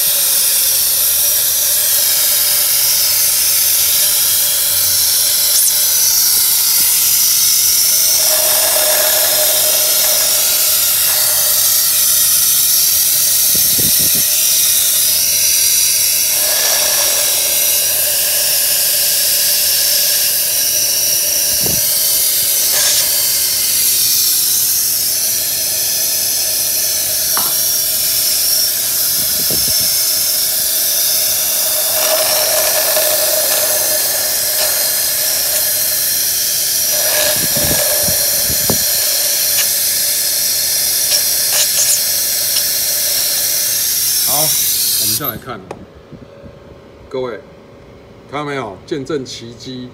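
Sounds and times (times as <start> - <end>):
vacuum suction hiss: 0.0 - 45.3.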